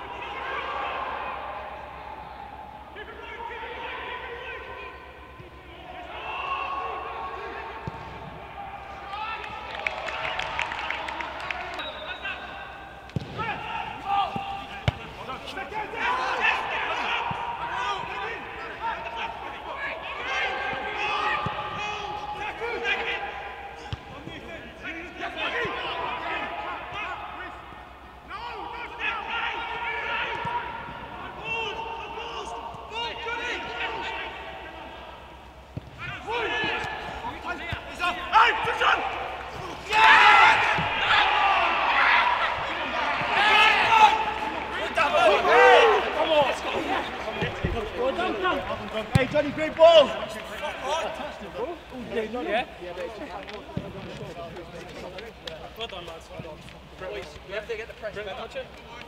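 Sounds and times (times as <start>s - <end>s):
goal celebration shouting: 0.0s - 35.4s, 36.0s - 51.7s
footballers shouting: 0.0s - 59.0s
football being kicked: 13.2s - 13.4s, 14.8s - 15.2s, 49.1s - 49.5s.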